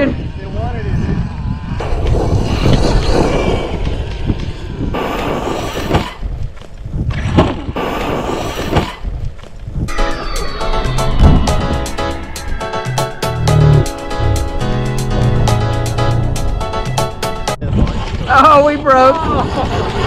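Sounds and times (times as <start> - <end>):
background music: 9.9 - 17.6.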